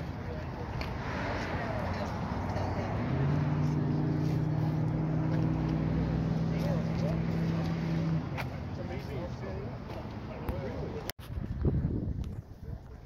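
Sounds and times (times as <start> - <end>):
people talking: 0.0 - 4.8, 6.4 - 11.1
vehicle engine humming: 0.0 - 11.1.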